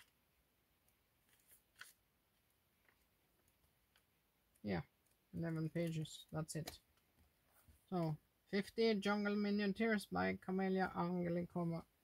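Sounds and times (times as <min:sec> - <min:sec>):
paper pages rustling: 0:00.8 - 0:04.2.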